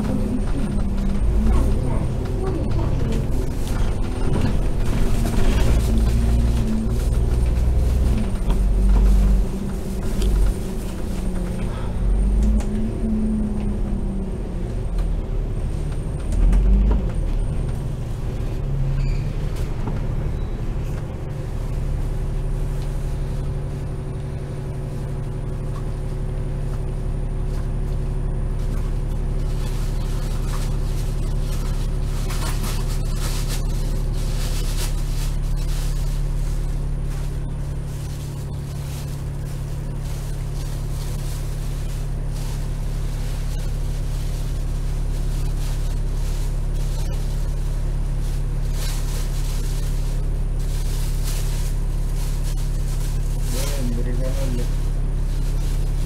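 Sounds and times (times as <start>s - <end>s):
bus engine and road rumble: 0.0s - 56.0s
bus engine idling: 0.0s - 56.0s.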